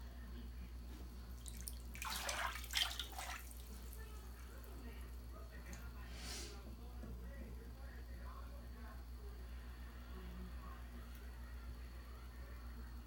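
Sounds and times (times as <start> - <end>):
low steady hum: 0.0 - 13.0
bath water sloshing: 1.4 - 4.4.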